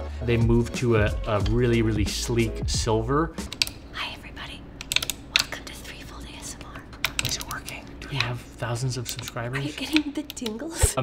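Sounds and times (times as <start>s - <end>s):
soft whispering: 3.9s - 4.7s, 5.4s - 8.5s.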